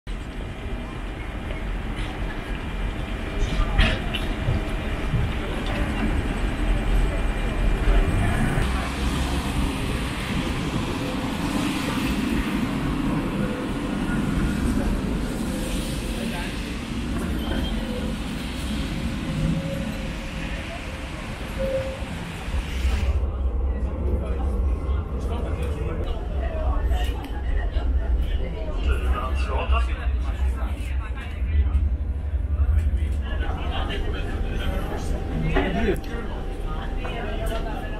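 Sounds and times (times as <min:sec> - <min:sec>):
tram running on rails: 0:00.1 - 0:37.9
people's voices: 0:00.4 - 0:37.9.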